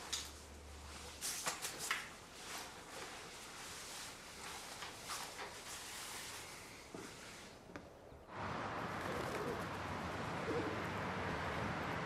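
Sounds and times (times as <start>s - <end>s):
city background hum: 0.0s - 12.0s
pigeons cooing: 8.9s - 11.2s.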